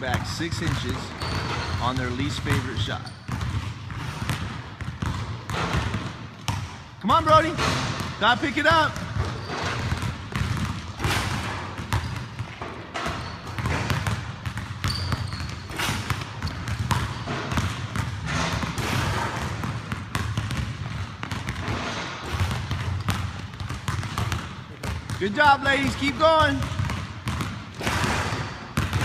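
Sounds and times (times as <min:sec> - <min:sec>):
basketballs bouncing on wooden floor: 0:00.0 - 0:29.0.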